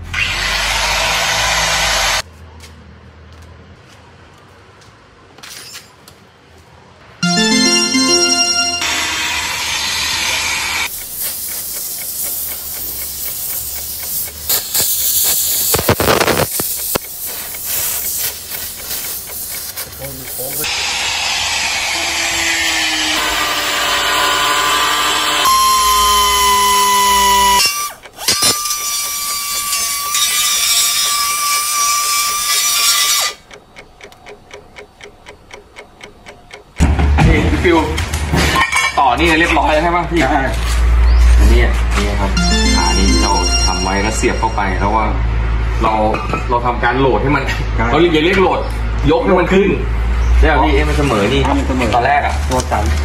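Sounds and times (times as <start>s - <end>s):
power tool cutting metal hiss: 10.8s - 33.4s
regular ticking: 10.9s - 15.2s, 16.6s - 20.7s, 31.6s - 36.9s
grinder whining: 20.6s - 33.5s.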